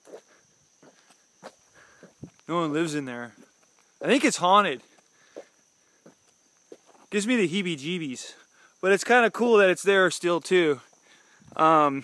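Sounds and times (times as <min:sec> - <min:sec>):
soft footsteps on paved road: 0:00.0 - 0:07.6, 0:10.3 - 0:12.0.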